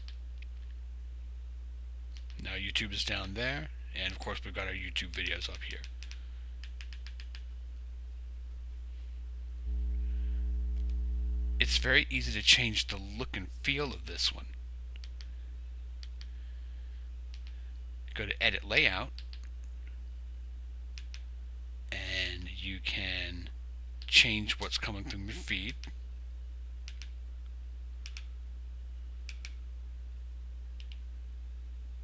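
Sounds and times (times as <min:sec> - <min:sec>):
low electrical hum: 0:00.0 - 0:32.0.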